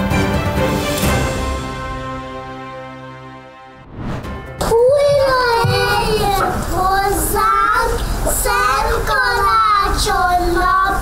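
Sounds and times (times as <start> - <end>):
child singing into microphone: 4.6 - 11.0.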